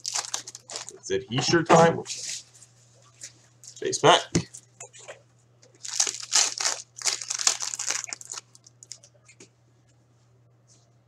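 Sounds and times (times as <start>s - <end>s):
foil wrapper crinkling and tearing: 0.0s - 1.0s, 5.7s - 9.1s.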